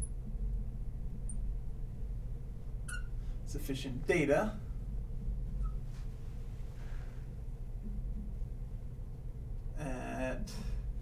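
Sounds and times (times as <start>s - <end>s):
low room hum: 0.0s - 11.0s
marker squeaking on glass: 2.9s - 3.2s, 5.6s - 5.8s.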